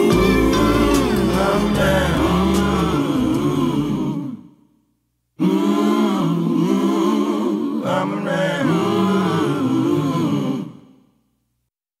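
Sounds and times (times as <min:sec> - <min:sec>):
person singing: 0:00.0 - 0:04.4.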